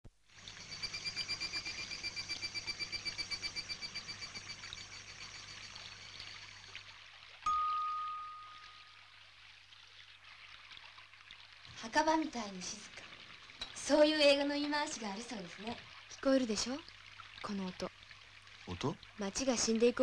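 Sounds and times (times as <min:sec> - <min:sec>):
faint watery hiss: 0:00.2 - 0:20.0
bright chime-like tone: 0:07.4 - 0:09.0.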